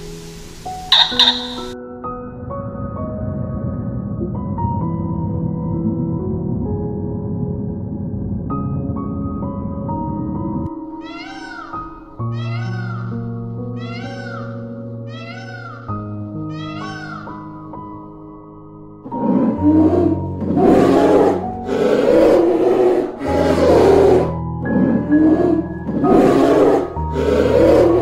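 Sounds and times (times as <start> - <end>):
soft background music: 0.0 - 28.0
animal call rising and falling: 0.9 - 1.8
loud rough animal calls: 0.9 - 1.8.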